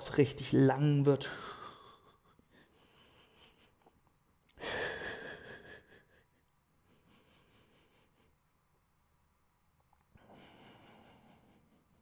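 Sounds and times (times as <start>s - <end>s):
person breathing hard: 1.3s - 3.8s, 4.6s - 8.4s, 10.2s - 12.0s.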